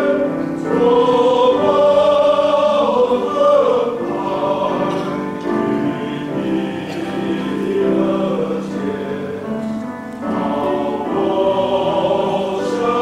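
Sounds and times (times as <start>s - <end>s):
men's choir singing a hymn: 0.0s - 13.0s.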